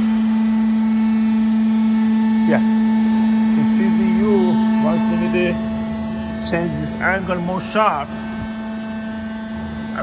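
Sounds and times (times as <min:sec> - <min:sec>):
machinery hum: 0:00.0 - 0:10.0.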